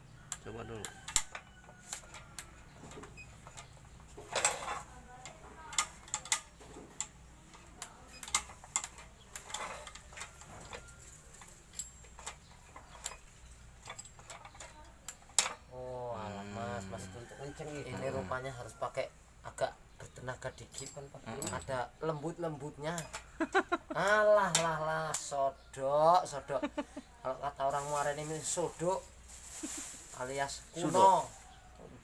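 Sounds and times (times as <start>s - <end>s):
saw parts clicking and knocking: 0.3s - 15.7s, 20.0s - 21.9s, 22.7s - 25.4s.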